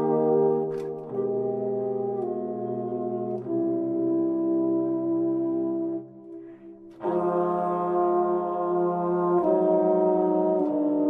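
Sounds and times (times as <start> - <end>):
brass chorale chords: 0.0 - 11.0.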